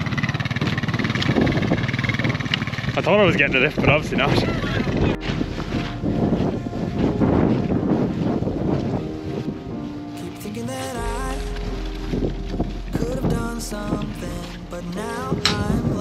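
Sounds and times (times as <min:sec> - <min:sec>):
wind buffeting microphone: 0:00.0 - 0:16.0
background song: 0:05.2 - 0:16.0.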